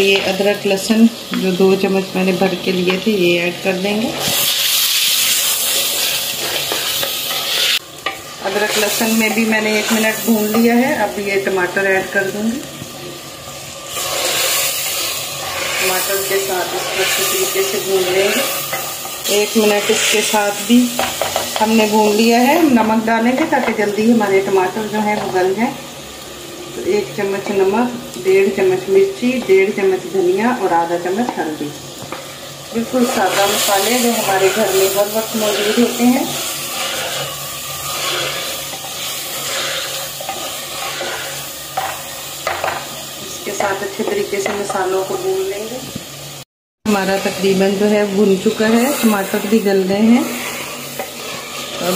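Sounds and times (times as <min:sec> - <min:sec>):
tomatoes sizzling in hot oil: 0:00.0 - 0:51.9.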